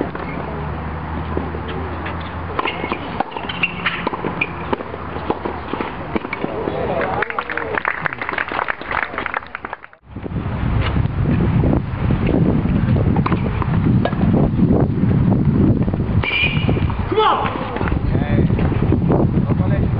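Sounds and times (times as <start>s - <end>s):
wind rumbling on microphone: 8.8s - 19.9s.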